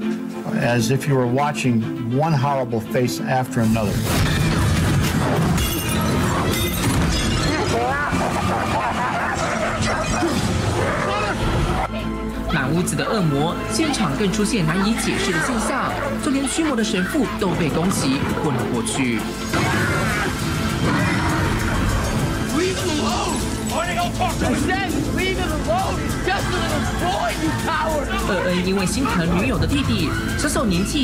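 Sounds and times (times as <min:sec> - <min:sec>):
dramatic horror music: 0:01.8 - 0:31.0
crashing and shattering glass: 0:04.1 - 0:08.0.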